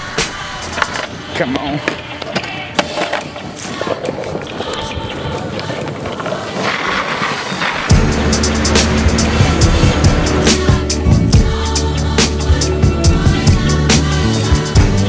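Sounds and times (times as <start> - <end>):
longboard wheels rolling on paving: 0.6 - 13.8
music with heavy bass beat: 7.9 - 15.0.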